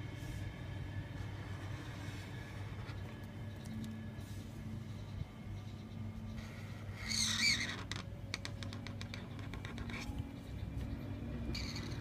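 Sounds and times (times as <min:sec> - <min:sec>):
steady low hum: 0:00.0 - 0:12.0
marker squeaking on paper: 0:04.7 - 0:10.8, 0:11.5 - 0:12.0.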